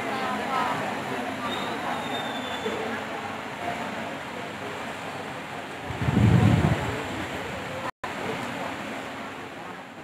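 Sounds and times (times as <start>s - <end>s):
room noise: 4.6s - 7.9s.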